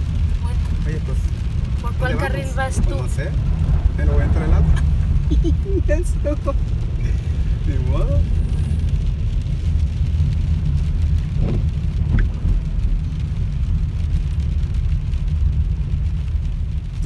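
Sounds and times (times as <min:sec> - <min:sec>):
car engine rumble inside cabin: 0:00.0 - 0:17.0
tyres on wet road: 0:00.0 - 0:17.0.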